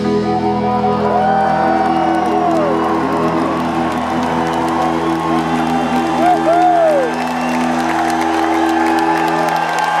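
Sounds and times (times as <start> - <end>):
crowd cheering and whooping: 0.2 - 10.0.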